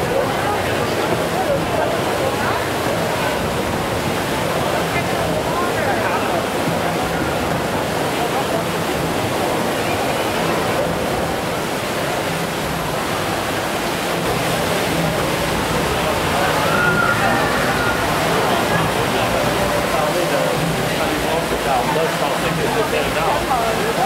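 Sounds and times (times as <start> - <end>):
faint murmuring voices: 0.0 - 24.0
rushing background noise: 0.0 - 24.0.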